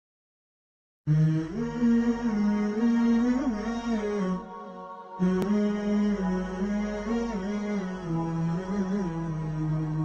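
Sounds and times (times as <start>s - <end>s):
chanted vocal music: 1.1s - 10.0s.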